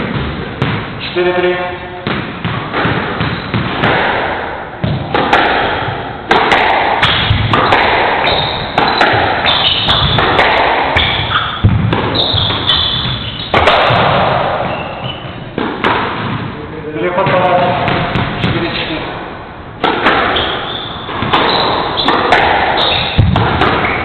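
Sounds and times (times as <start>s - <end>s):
squash ball smacks: 0.0s - 1.0s, 2.0s - 18.8s, 19.8s - 24.0s
shoes squeaking on wooden floor: 2.9s - 3.8s, 7.3s - 10.4s, 11.0s - 15.6s, 20.2s - 24.0s.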